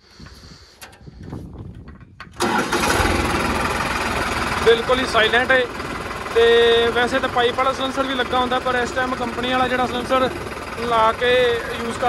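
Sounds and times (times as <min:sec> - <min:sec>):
diesel tractor engine starting: 0:02.2 - 0:12.0.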